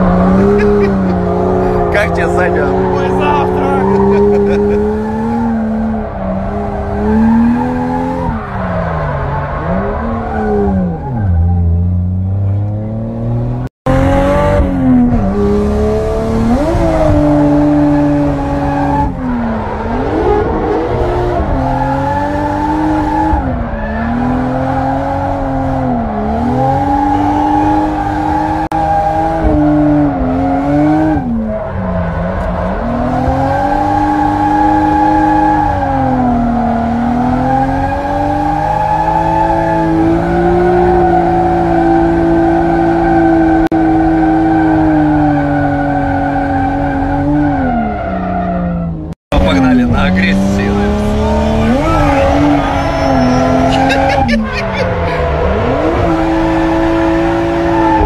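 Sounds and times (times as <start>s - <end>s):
car engine revving: 0.0s - 58.0s
tyres squealing: 49.5s - 56.0s.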